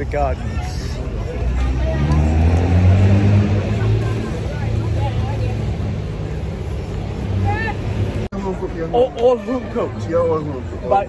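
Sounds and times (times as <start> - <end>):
market voices: 0.0 - 11.0.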